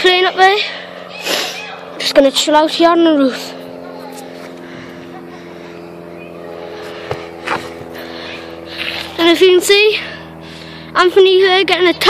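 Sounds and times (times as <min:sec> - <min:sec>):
engine drone: 0:00.0 - 0:12.0.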